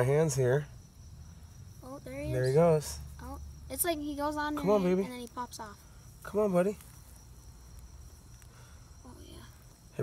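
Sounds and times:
insects trilling: 0:00.0 - 0:10.0.

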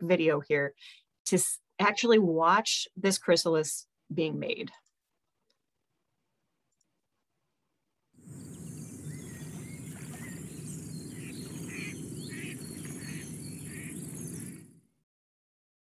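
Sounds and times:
insect drone: 0:08.2 - 0:14.7
birds chirping and calling: 0:08.3 - 0:14.7.

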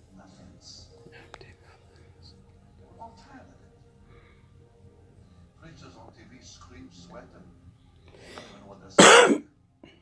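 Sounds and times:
sermon through television speaker: 0:08.1 - 0:09.4.

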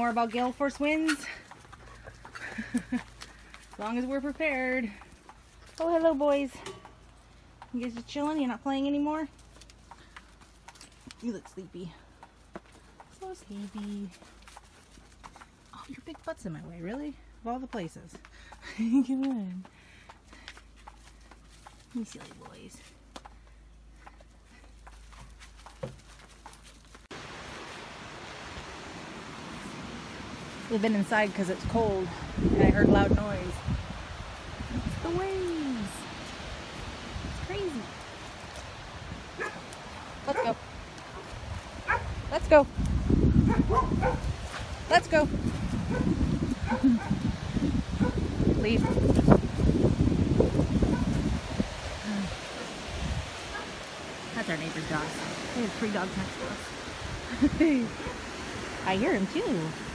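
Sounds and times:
rustling through grass: 0:20.4 - 0:59.9
lake surf: 0:27.2 - 0:32.4, 0:51.4 - 0:59.9
wind rushing: 0:31.5 - 0:37.9, 0:40.6 - 0:58.9
distant dog barking: 0:39.4 - 0:39.7, 0:40.3 - 0:42.2, 0:43.4 - 0:44.3, 0:45.9 - 0:47.2, 0:48.0 - 0:49.0, 0:50.9 - 0:51.2, 0:53.5 - 0:53.8.

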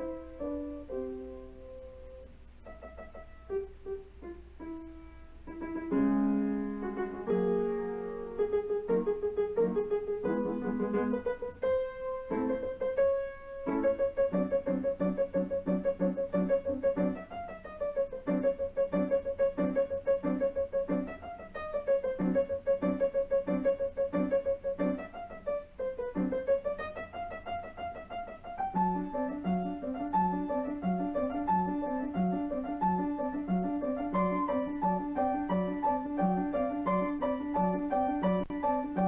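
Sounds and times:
piano music: 0:00.0 - 0:39.0.

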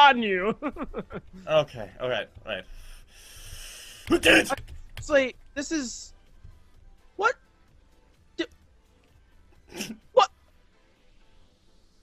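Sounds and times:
person exclaiming: 0:04.1 - 0:04.6, 0:10.1 - 0:10.3.

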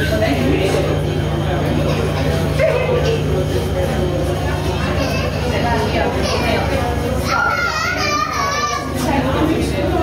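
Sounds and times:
room chatter: 0:00.0 - 0:10.0
steady low hum: 0:00.0 - 0:10.0.

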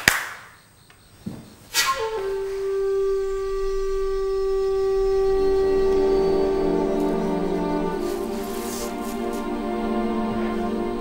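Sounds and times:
sharp hand claps: 0:00.0 - 0:00.6
dramatic music cue: 0:02.0 - 0:11.0.

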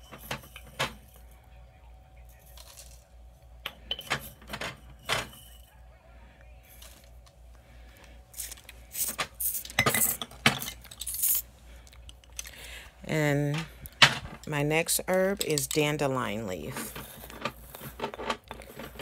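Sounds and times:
glass jars rattling: 0:00.0 - 0:01.2, 0:03.7 - 0:05.7, 0:08.4 - 0:11.4, 0:15.4 - 0:19.0.

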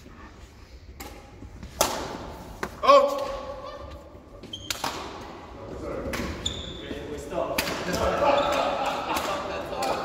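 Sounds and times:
men's voices echoing: 0:06.8 - 0:10.0.

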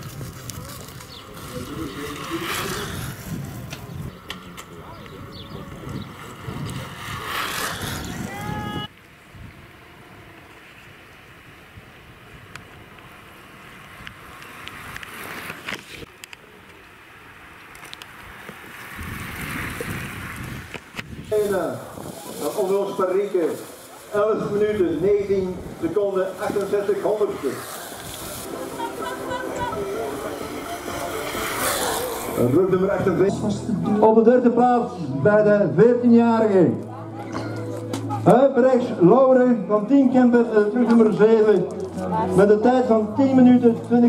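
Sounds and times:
faint voices: 0:00.0 - 0:08.9, 0:21.4 - 0:44.0.

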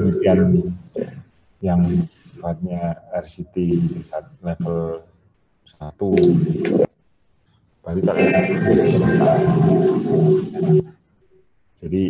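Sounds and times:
man speaking: 0:00.0 - 0:05.0, 0:05.7 - 0:06.9, 0:07.9 - 0:10.8
man's held hesitation sound: 0:00.0 - 0:05.0.

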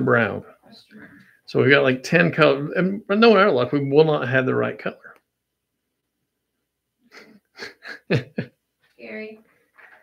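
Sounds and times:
person laughing under breath: 0:07.1 - 0:08.5.

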